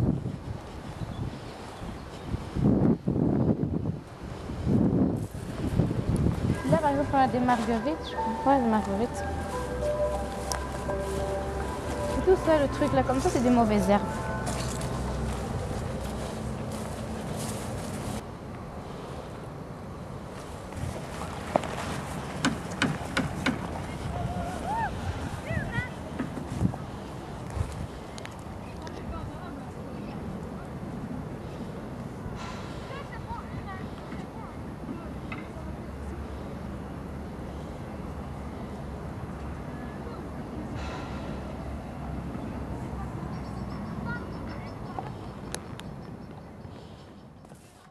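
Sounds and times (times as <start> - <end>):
wind rushing over microphone: 0.0 - 18.8, 20.2 - 35.2
low outdoor rumble: 5.2 - 47.0.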